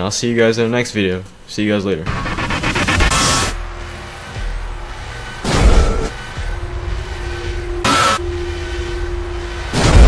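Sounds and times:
low rumble with steady hum: 2.1 - 10.0.

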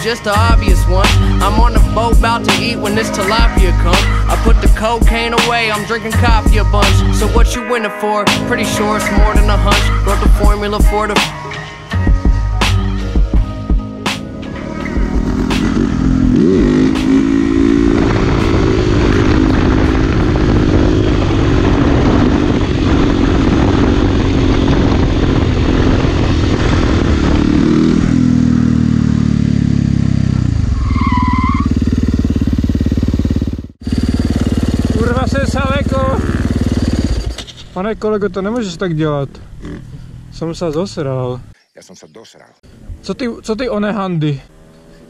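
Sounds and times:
motorcycle engine revving: 0.0 - 7.5, 8.4 - 40.7, 44.4 - 45.0.

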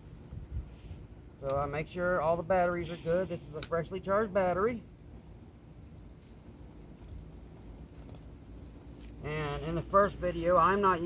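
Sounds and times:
faint low outdoor rumble: 0.0 - 11.0.

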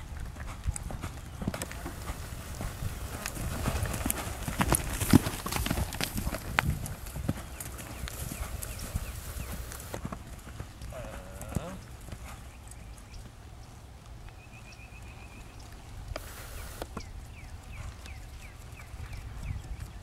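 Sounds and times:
horse hoofbeats on sand: 0.0 - 13.8, 14.5 - 20.0.

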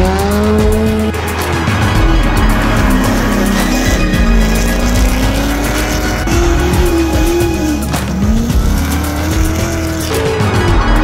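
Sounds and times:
background music: 0.0 - 11.0
car engine at high revs: 0.0 - 11.0
tyre squeal: 2.4 - 10.3.

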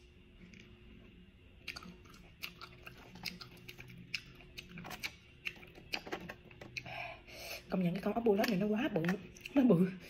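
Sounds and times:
wet chewing clicks: 1.6 - 6.9, 8.3 - 9.6.

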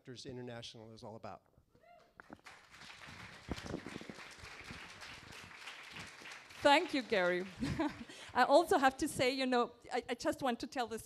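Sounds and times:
audience applause: 2.2 - 8.4.

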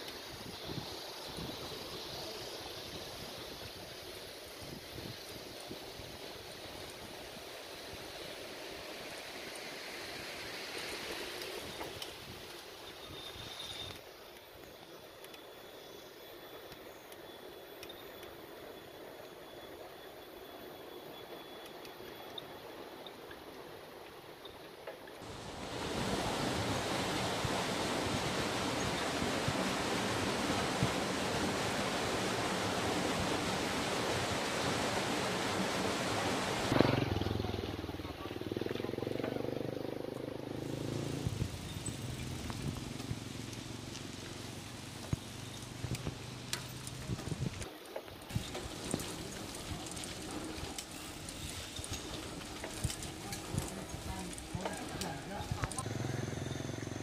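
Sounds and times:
outdoor riding noise: 0.0 - 57.0
rushing river water: 25.2 - 57.0.

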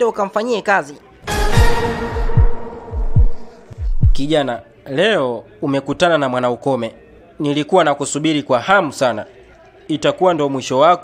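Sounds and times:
loud held music chord: 1.2 - 4.4
deep booms dropping in pitch: 1.5 - 4.3.

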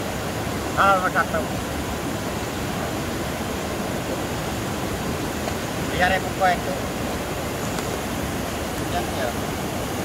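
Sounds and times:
river rapids rushing over boulders: 0.0 - 10.0.

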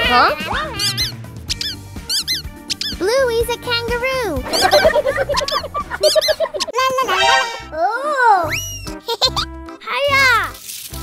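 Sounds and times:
background music: 0.0 - 11.0
high-pitched cartoon squeaks: 0.5 - 3.2, 4.5 - 7.6, 8.5 - 9.5.

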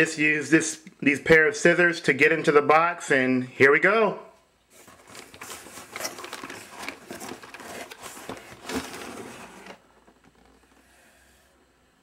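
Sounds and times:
cardboard rustling and scraping: 4.7 - 10.8
small knocks and crinkles: 4.7 - 10.8.

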